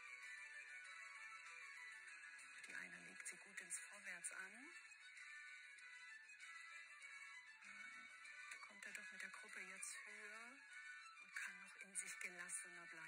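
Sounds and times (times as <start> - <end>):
quiet background music: 0.0 - 13.0
faint talk through television speaker: 2.5 - 4.9, 8.6 - 10.6, 11.4 - 13.0.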